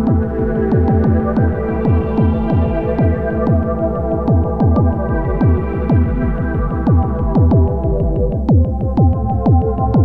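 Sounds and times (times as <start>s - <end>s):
ambient electronic music: 0.0s - 10.0s.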